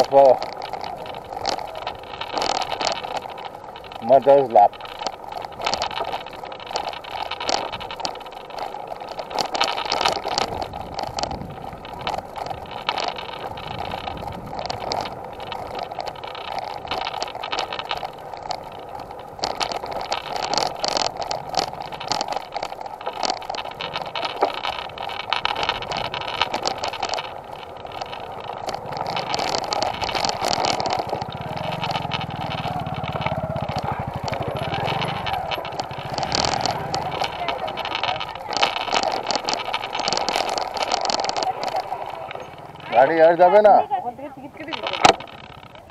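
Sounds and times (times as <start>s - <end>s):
camera rattling over bumps: 0.0s - 45.9s
road noise on dirt lane: 0.0s - 45.9s.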